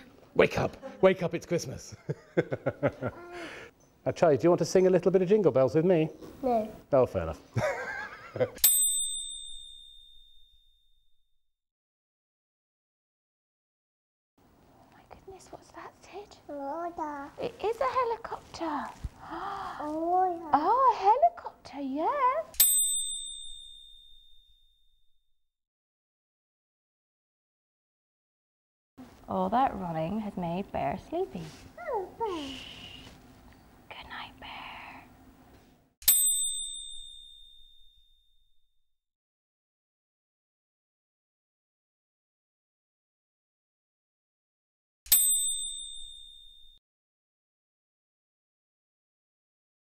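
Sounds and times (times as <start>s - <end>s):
bell ding: 8.6s - 11.0s, 22.6s - 24.9s, 36.0s - 38.4s, 45.1s - 46.8s
person whispering shh: 32.2s - 33.1s, 34.0s - 35.1s.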